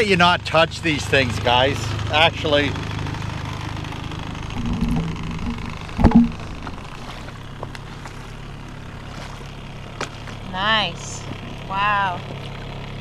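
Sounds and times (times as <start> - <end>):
outboard motor idling: 0.0 - 13.0.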